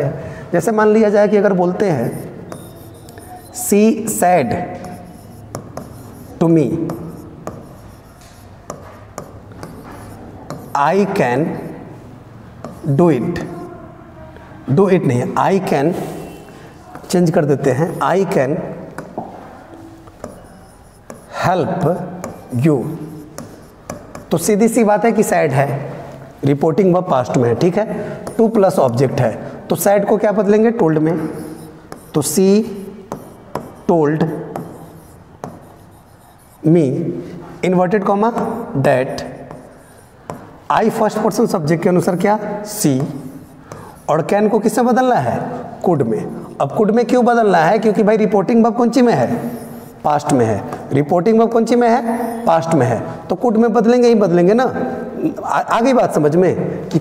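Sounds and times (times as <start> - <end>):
marker scratching on board: 1.6 - 13.8, 15.4 - 45.0, 45.8 - 48.0, 48.8 - 52.7
chalk tapping on blackboard: 2.0 - 11.8, 12.6 - 13.7, 16.9 - 30.2, 31.1 - 36.8, 38.0 - 44.8, 49.3 - 50.9
chalk strokes on blackboard: 2.0 - 13.7, 15.8 - 44.9, 48.9 - 50.8
marker tip tapping on board: 2.1 - 3.5, 4.7 - 10.8, 12.6 - 13.5, 18.9 - 19.4, 20.1 - 24.5, 28.2 - 29.0, 31.4 - 32.4, 33.1 - 33.9, 34.5 - 36.0, 38.3 - 38.7, 39.4 - 40.5.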